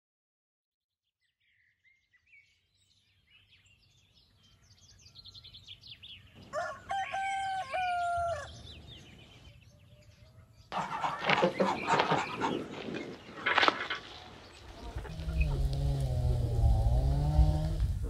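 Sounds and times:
small birds chirping: 1.1s - 18.0s
rooster crowing: 6.5s - 8.6s.

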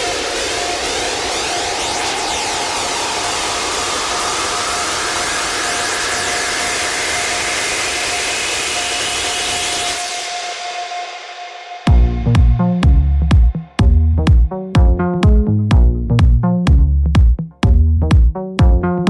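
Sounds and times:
white-noise riser: 0.0s - 12.7s
synth tone rising in pitch: 0.0s - 15.8s.

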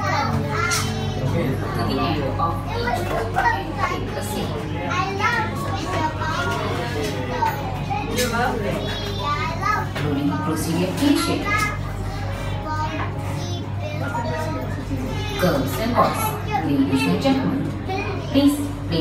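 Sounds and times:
children chattering: 0.0s - 19.0s.

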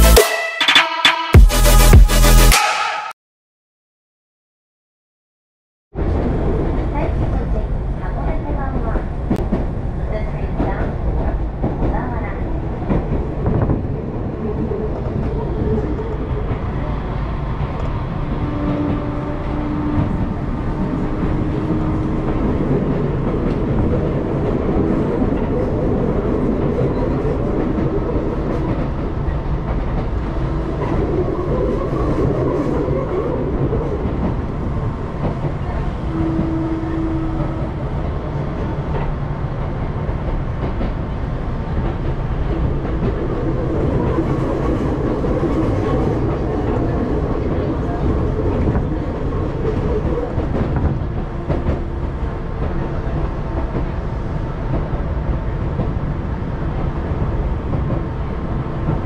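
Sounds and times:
train wheels rumbling on rails: 6.0s - 59.0s.

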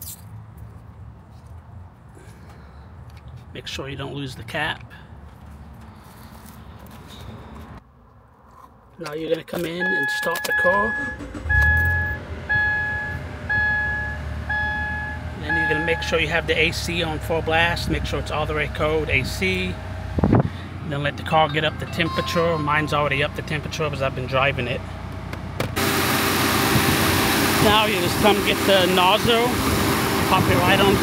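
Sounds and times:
car warning chime beeping: 9.7s - 16.2s, 21.4s - 23.1s
car engine idling: 9.8s - 31.0s
loud rushing noise from engine bay: 25.6s - 31.0s.

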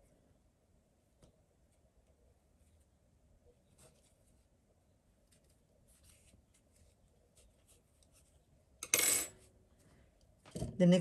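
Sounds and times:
metal hook clattering on table: 8.8s - 9.4s.

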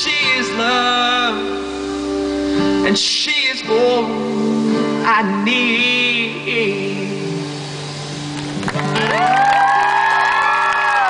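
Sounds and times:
guitar and bass chord ringing: 0.0s - 9.4s
audience whooping and cheering: 8.6s - 11.0s.

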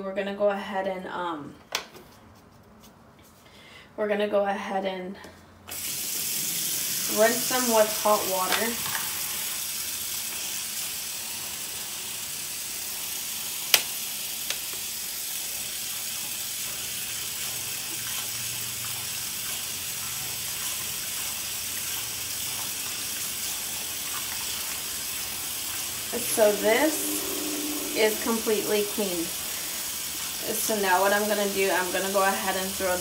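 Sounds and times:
tap water running into sink: 5.7s - 26.6s.

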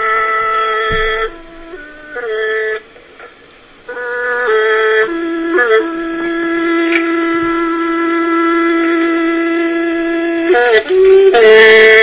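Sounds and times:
wind instrument slow melody: 0.0s - 12.0s.

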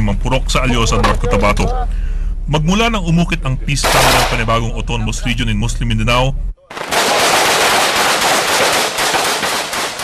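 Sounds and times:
rapid rifle fire: 6.7s - 10.0s.

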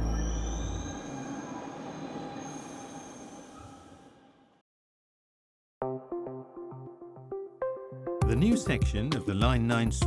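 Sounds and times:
train wheel squeal: 0.0s - 4.5s.

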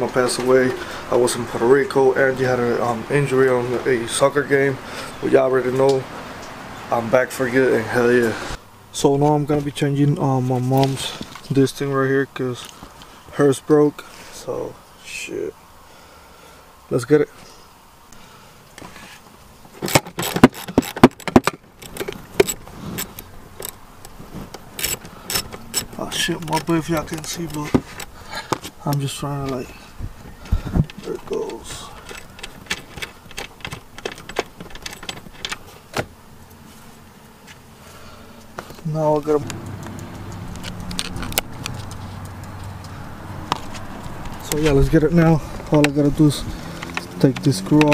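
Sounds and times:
car seat fittings clicking: 19.8s - 28.7s, 30.8s - 36.2s
socket ratchet clicking: 24.6s - 26.7s.

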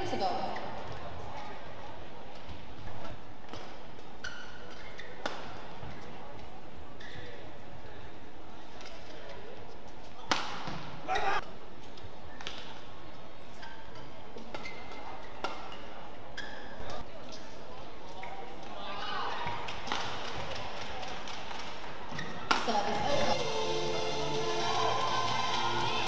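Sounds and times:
shoes squeaking on court: 2.3s - 7.5s, 13.4s - 18.6s, 22.1s - 22.8s
racket striking shuttlecock: 22.5s - 22.7s.

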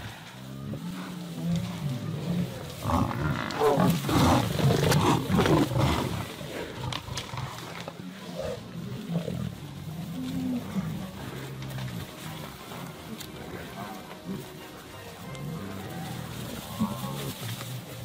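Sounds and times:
buffalo bellowing: 0.0s - 18.0s
lions growling: 0.0s - 18.0s
running herd rumble: 0.0s - 18.0s.

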